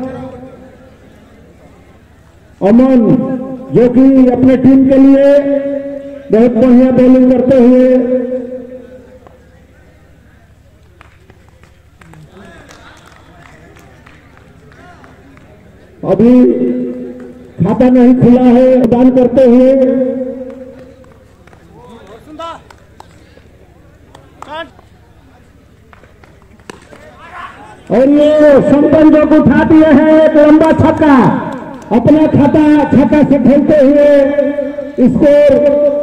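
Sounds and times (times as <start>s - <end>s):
distant spectators shouting: 8.3s - 18.3s, 19.4s - 33.3s
cricket bat striking ball: 26.0s - 27.2s.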